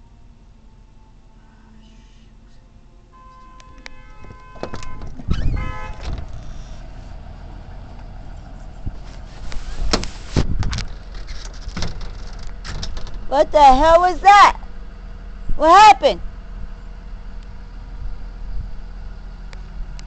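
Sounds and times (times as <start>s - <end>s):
bus engine rumble: 0.0s - 20.0s
bus horn: 3.1s - 7.0s.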